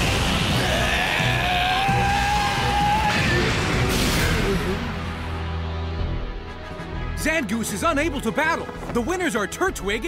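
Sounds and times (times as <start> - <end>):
dramatic background music: 0.0 - 10.0
creature crying out: 0.5 - 3.4.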